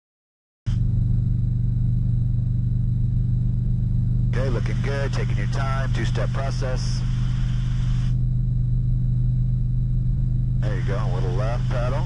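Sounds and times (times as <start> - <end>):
faint high whine: 0.7 - 12.0
helicopter engine and rotors drone: 0.7 - 12.0.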